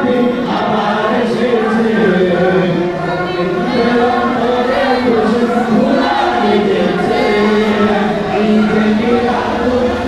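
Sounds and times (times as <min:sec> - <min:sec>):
group singing a chant: 0:00.0 - 0:10.0.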